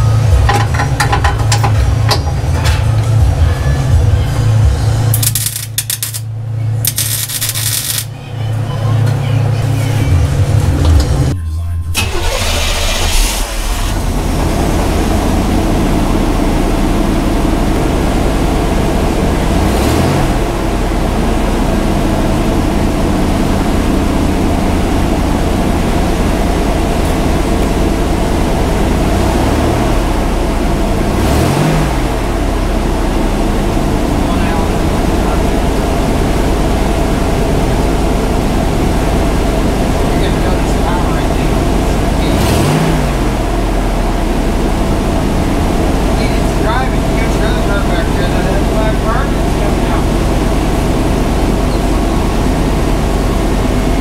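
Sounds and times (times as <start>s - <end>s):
truck engine idling: 0.0s - 54.0s
engine revving: 12.0s - 54.0s.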